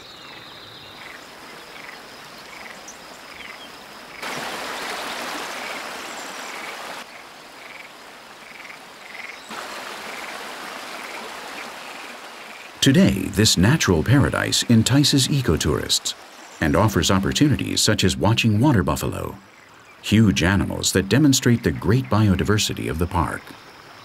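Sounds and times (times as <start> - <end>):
background hiss: 0.0 - 24.0
frogs croaking: 0.0 - 24.0.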